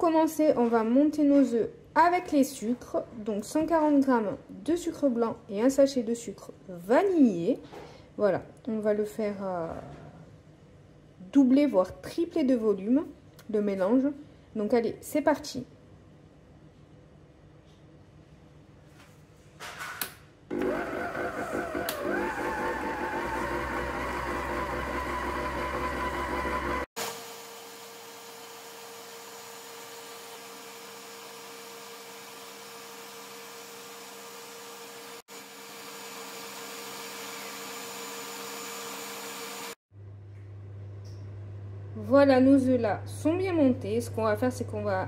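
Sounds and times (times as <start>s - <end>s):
mixer clicks: 20.5s - 26.8s
stand mixer motor whining: 20.5s - 39.8s.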